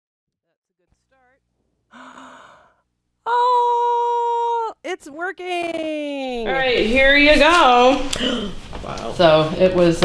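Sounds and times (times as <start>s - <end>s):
woman's breathy sound: 1.9s - 2.8s.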